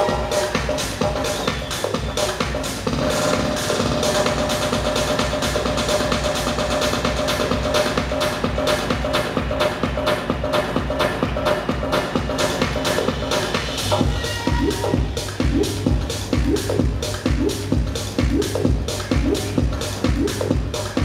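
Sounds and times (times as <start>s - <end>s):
electronic dance music beat: 0.0s - 21.0s.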